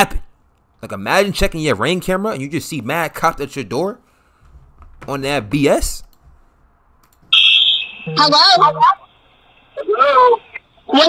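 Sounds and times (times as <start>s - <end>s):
high-pitched electronic beep tone: 7.4s - 9.1s.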